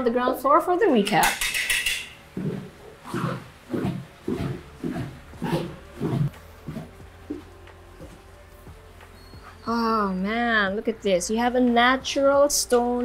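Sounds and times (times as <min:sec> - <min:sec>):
footsteps going down stairs: 0:02.4 - 0:09.6.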